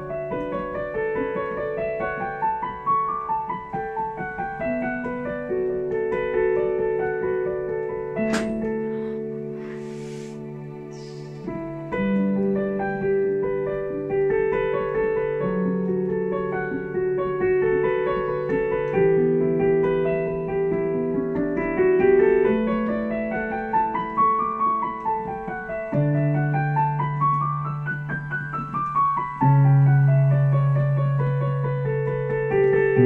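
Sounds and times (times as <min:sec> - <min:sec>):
calm piano improvisation: 0:00.0 - 0:33.0.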